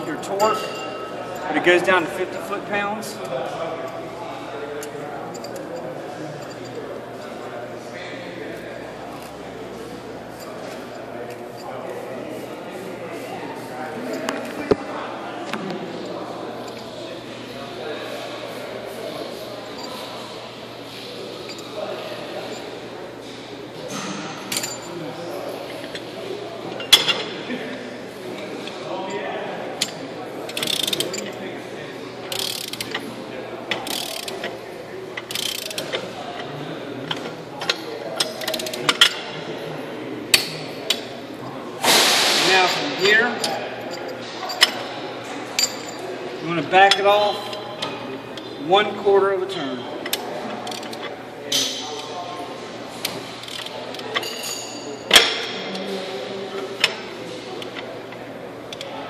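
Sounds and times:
torque wrench clicking: 0:29.8 - 0:31.4, 0:32.2 - 0:33.0, 0:33.7 - 0:34.5, 0:35.2 - 0:36.0, 0:50.0 - 0:51.7, 0:53.0 - 0:54.3.

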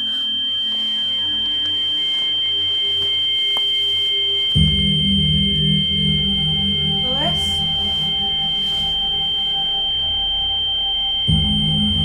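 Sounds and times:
high pure ringing tone: 0:00.0 - 0:12.0
loud wavering low drone: 0:04.6 - 0:12.0.

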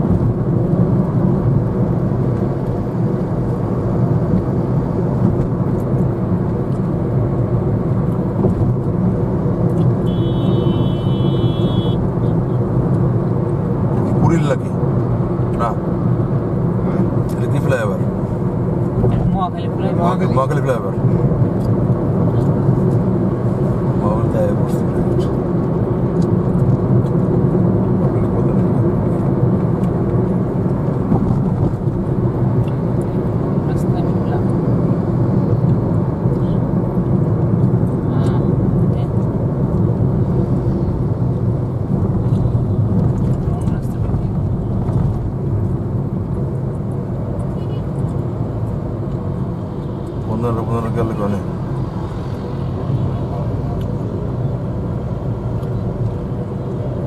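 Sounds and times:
road and engine noise in car: 0:00.0 - 0:57.0.

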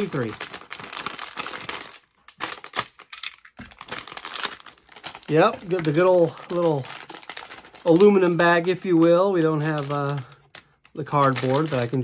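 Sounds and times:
foil bag crinkling: 0:00.0 - 0:12.0.

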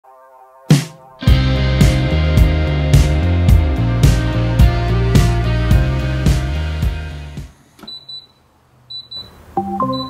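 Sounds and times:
background music: 0:00.0 - 0:07.6, 0:09.6 - 0:10.0
timer beeping: 0:07.9 - 0:10.0
smart speaker chime: 0:08.0 - 0:10.0.

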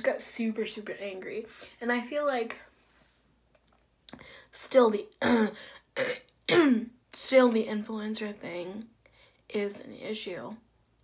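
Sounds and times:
woman clearing her throat: 0:05.2 - 0:06.9.

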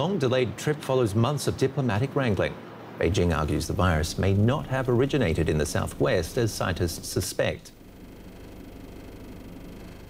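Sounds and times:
street ambient hum: 0:00.0 - 0:10.0.

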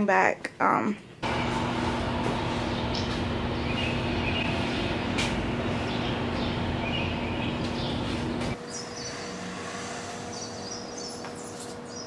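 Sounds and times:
low hum: 0:01.2 - 0:11.2
outdoor background rumble: 0:01.2 - 0:12.0.

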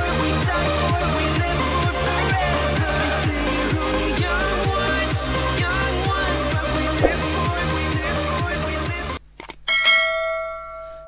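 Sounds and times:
music: 0:00.0 - 0:09.2
bell ding: 0:09.7 - 0:11.0.

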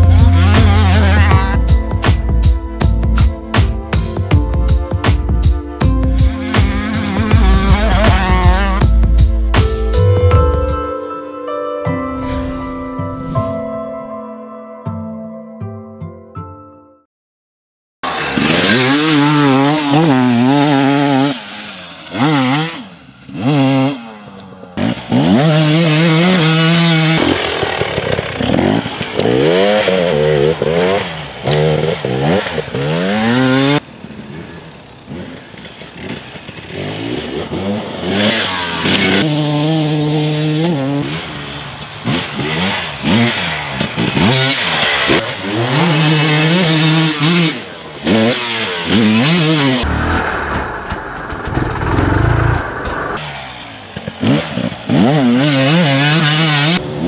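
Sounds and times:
dirt bike engine revving: 0:00.0 - 0:03.8, 0:06.2 - 0:10.0, 0:18.0 - 0:57.0.

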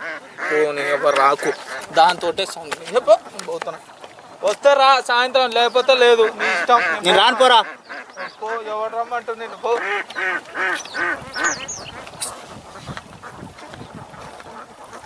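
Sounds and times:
man speaking: 0:00.4 - 0:03.8, 0:04.4 - 0:07.7, 0:08.4 - 0:10.0.

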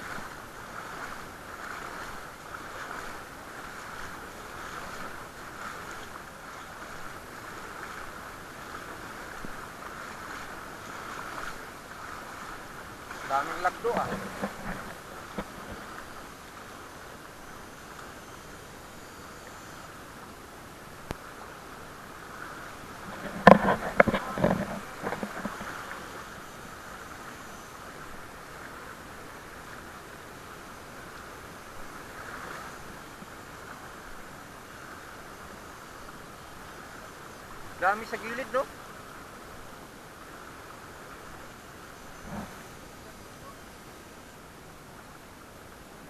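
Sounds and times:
fast-flowing river rushing: 0:00.0 - 0:46.0
wind on microphone: 0:22.3 - 0:26.4, 0:41.8 - 0:43.2.

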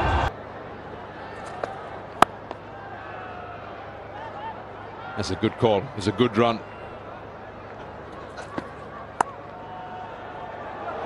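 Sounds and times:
stadium crowd ambience: 0:00.0 - 0:11.0
cricket bat hitting ball: 0:01.5 - 0:02.5, 0:08.4 - 0:09.4.

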